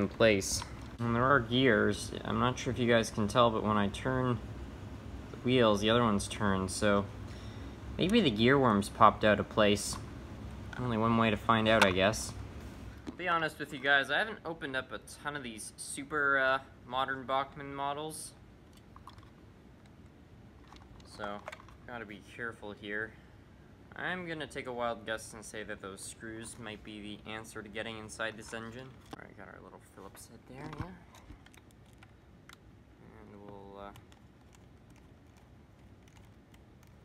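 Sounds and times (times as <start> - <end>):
low room hum: 0.0 - 37.0.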